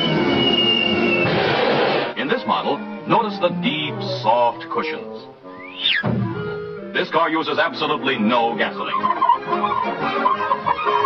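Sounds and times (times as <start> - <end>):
falling whistle: 0.0 - 1.4, 5.5 - 6.6, 8.9 - 11.0.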